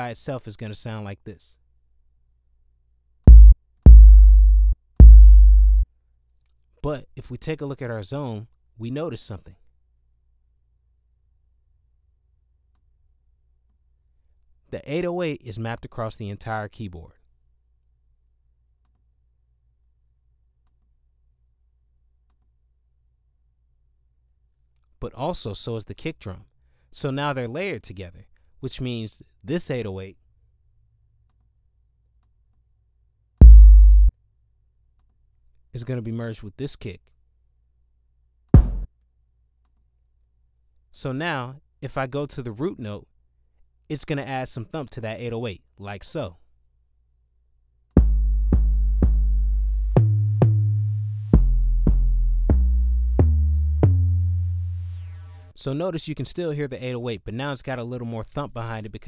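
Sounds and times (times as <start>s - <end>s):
deep electronic bass notes: 3.3s - 5.8s, 33.4s - 34.1s, 48.0s - 55.5s.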